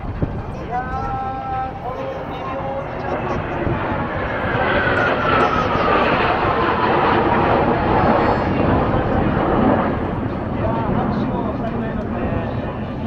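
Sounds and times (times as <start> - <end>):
jets flying over: 0.0 - 13.0.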